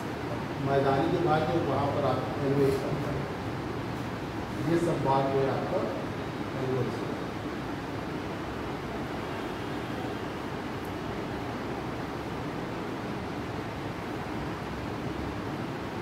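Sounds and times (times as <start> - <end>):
room noise hiss: 0.0 - 16.0.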